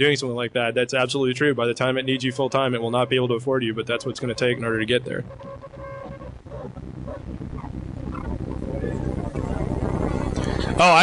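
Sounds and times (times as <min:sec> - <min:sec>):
low room noise rumble: 0:00.0 - 0:11.0.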